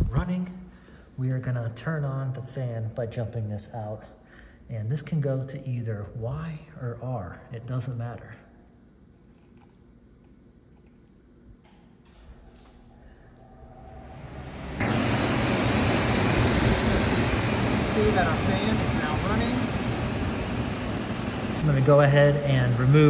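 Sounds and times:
blower fan rushing air: 12.1s - 23.0s.

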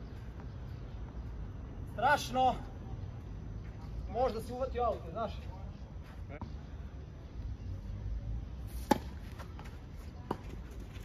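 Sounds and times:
tennis racket striking ball: 8.8s - 9.2s.

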